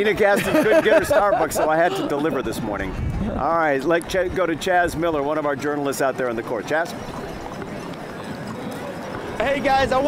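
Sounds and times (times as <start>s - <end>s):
street parade crowd hubbub: 0.0s - 10.0s.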